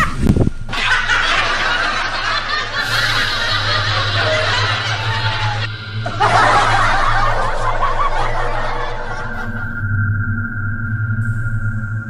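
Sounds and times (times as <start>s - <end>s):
background music: 0.0s - 12.0s
people snickering and chuckling: 0.7s - 9.7s.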